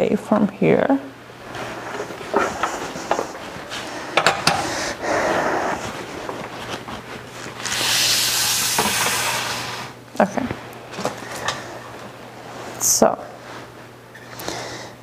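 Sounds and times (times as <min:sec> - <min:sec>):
utensils clicking and knocking: 0:04.1 - 0:04.7
steady hiss: 0:07.6 - 0:10.0.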